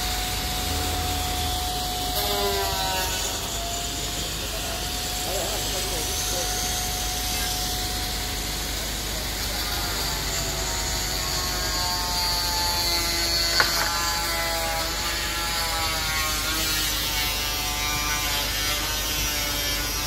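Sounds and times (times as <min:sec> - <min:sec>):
engine-driven machinery rumbling: 0:00.0 - 0:09.4.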